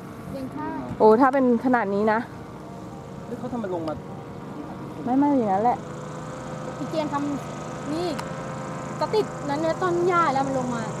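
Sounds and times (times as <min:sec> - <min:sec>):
faint motor hum: 0:00.0 - 0:11.0
people talking: 0:06.8 - 0:08.2, 0:09.0 - 0:11.0.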